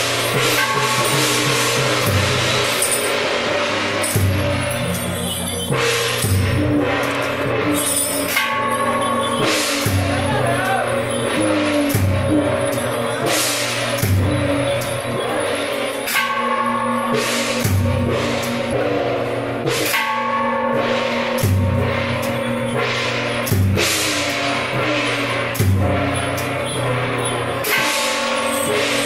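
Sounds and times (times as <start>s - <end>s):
cymbal crashes: 0.0s - 29.0s
deep drum strokes: 0.0s - 29.0s
ringing gong strokes: 0.0s - 29.0s.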